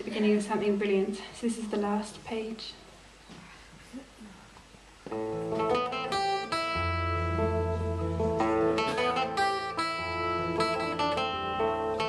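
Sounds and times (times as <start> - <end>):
acoustic guitar playing: 5.1 - 12.0.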